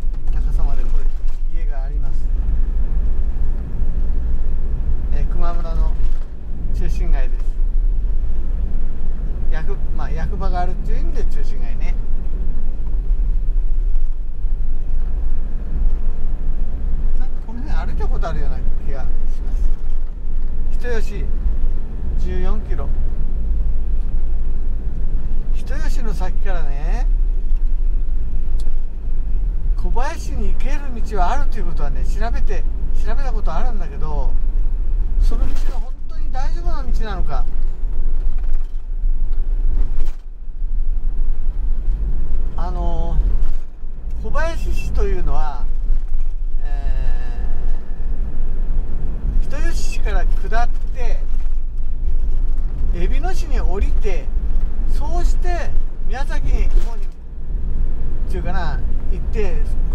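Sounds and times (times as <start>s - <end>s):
camper van engine and tyre rumble: 0.0s - 59.9s.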